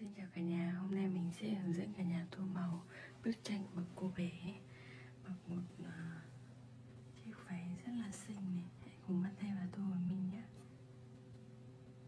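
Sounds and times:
woman speaking softly: 0.0s - 6.4s, 7.1s - 10.7s.

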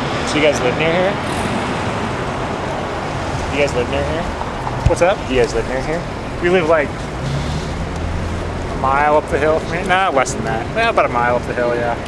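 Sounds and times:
road traffic noise: 0.0s - 12.0s
vehicle passing close by: 1.2s - 9.2s.

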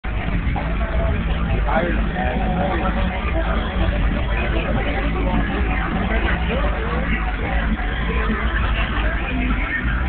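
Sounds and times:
people talking: 0.1s - 10.0s.

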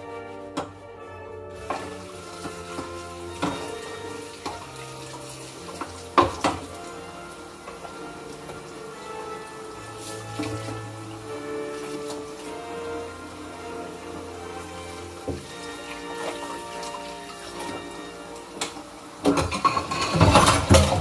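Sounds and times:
music with sustained notes: 0.0s - 21.0s
dishes and utensils clinking: 1.6s - 21.0s.

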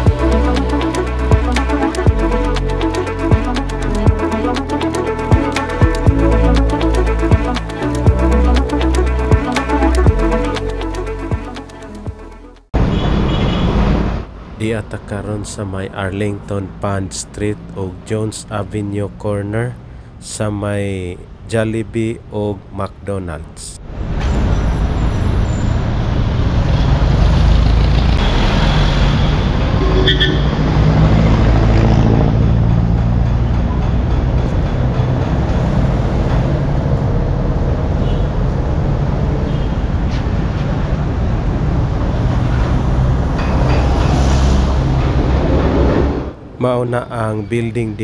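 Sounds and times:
street traffic engines: 0.0s - 48.0s
high squeal: 24.0s - 26.1s.

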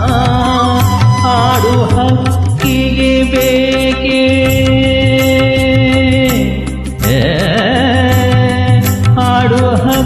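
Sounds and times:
karaoke backing track: 0.0s - 10.0s.

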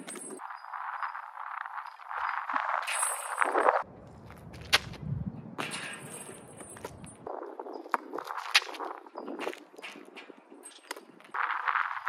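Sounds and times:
sneaker footsteps on asphalt: 3.8s - 10.2s.

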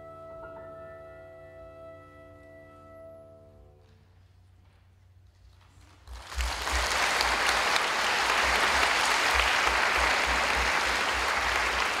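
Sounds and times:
audience applauding: 6.0s - 12.0s.

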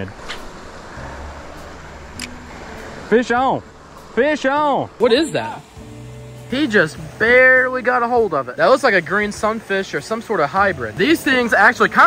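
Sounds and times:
creek water running: 0.0s - 12.0s.

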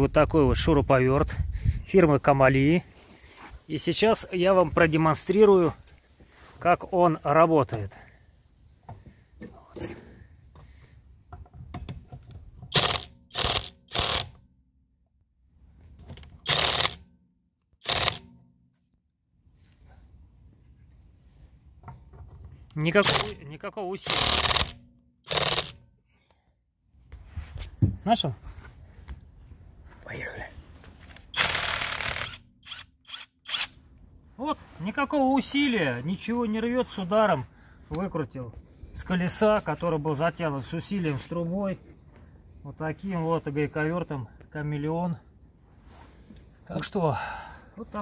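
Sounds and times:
impact wrench rattling: 12.5s - 14.4s, 16.2s - 17.0s, 17.8s - 18.4s, 23.0s - 23.4s, 24.0s - 25.8s, 31.3s - 33.6s.

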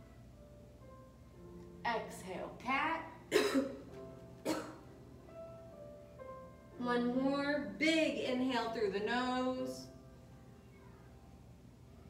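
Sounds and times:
soft instrumental music: 0.0s - 12.0s
woman coughing: 3.3s - 3.8s, 4.4s - 4.8s.

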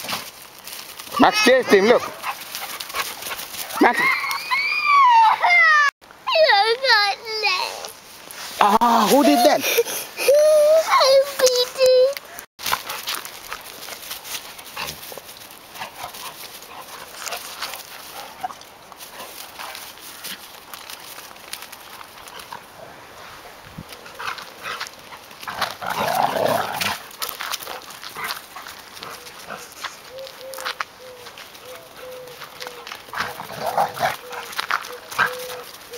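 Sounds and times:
dogs scuffling on grass: 0.0s - 5.6s, 6.3s - 35.9s
dog sound: 25.5s - 35.9s.

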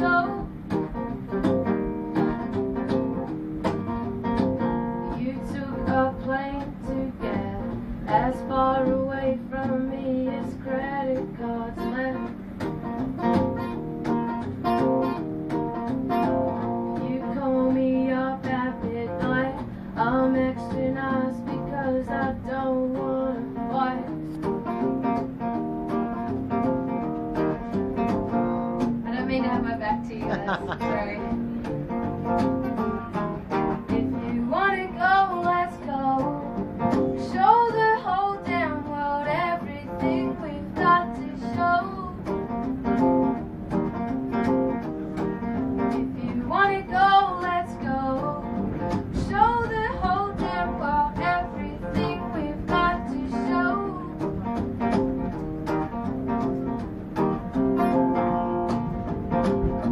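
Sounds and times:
woman singing: 0.0s - 0.7s, 5.0s - 12.4s, 16.6s - 24.8s, 29.0s - 31.4s, 33.7s - 42.4s, 45.5s - 54.6s
acoustic guitar strumming: 0.0s - 59.9s.

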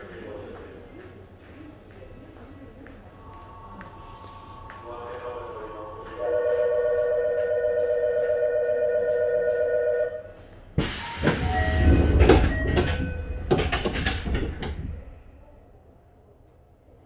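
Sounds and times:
train doors sliding shut: 10.8s - 15.4s.

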